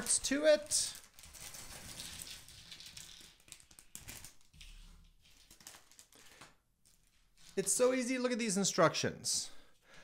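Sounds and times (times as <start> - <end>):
plastic bag crinkling: 0.0 - 7.8.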